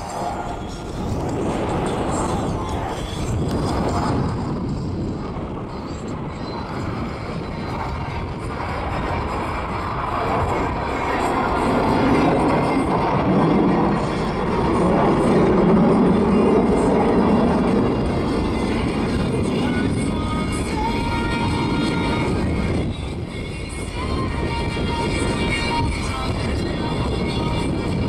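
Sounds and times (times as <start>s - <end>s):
jets roaring past: 0.0s - 28.0s.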